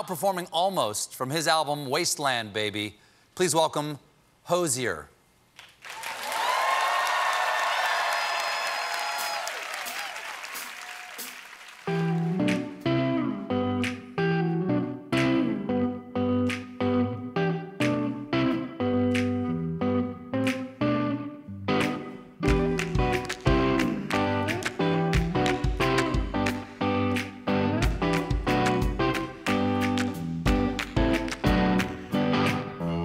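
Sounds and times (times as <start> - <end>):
audience applauding and cheering: 5.6 - 12.8, 22.5 - 26.6
electric guitars: 11.8 - 33.0
low bass notes: 12.0 - 33.0.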